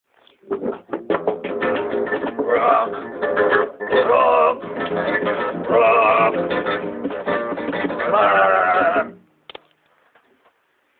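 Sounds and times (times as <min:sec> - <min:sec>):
guitar chords strummed: 0:00.4 - 0:09.3
live rock band music: 0:00.5 - 0:09.2.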